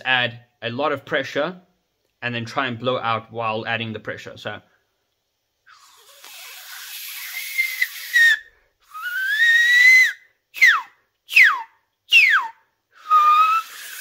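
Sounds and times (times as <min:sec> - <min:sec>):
beatbox laser whistle: 0:05.7 - 0:14.0.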